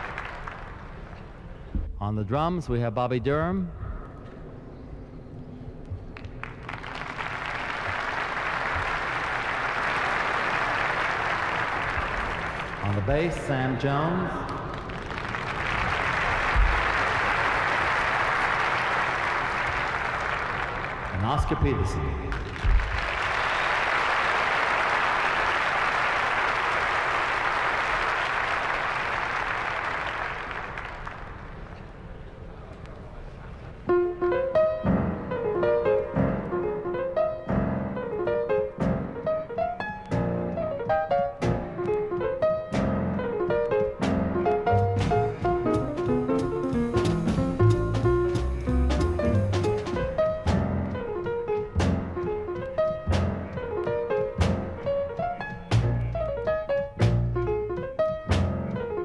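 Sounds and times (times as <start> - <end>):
audience applause: 0.0 - 1.4, 6.2 - 31.9
grand piano: 3.8 - 30.4, 33.2 - 59.0
upright double bass: 44.0 - 51.1, 51.8 - 52.3, 53.0 - 53.8, 54.4 - 54.9, 55.7 - 56.4, 57.0 - 57.6, 58.3 - 58.9.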